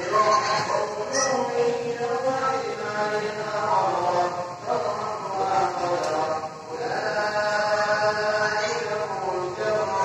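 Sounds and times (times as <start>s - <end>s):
person chanting melodically: 0.0s - 10.0s.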